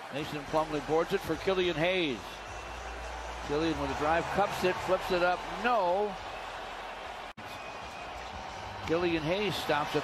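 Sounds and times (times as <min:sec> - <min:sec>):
arena and court noise: 0:00.0 - 0:10.0.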